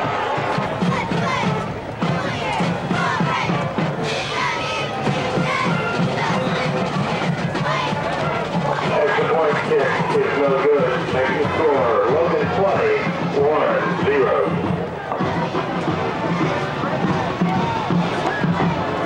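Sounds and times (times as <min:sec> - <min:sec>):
marching band playing: 0:00.0 - 0:19.0
stadium crowd cheering and shouting: 0:00.0 - 0:19.0.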